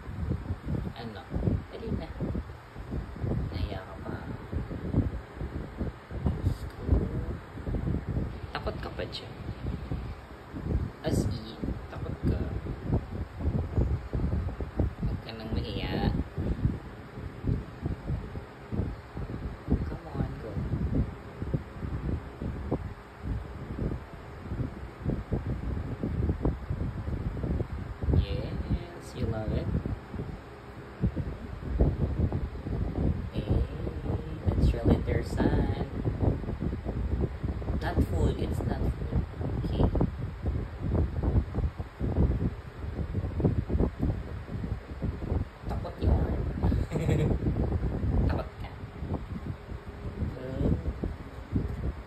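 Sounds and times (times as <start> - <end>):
wind rumbling on microphone: 0.0 - 52.0
low irregular rustling: 39.0 - 52.0.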